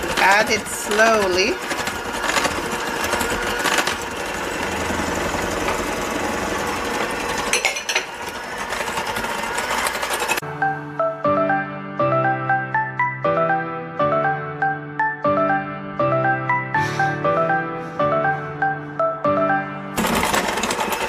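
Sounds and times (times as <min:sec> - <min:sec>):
electric hand mixer running: 0:00.0 - 0:10.6, 0:19.4 - 0:21.0
light piano music: 0:10.4 - 0:21.0.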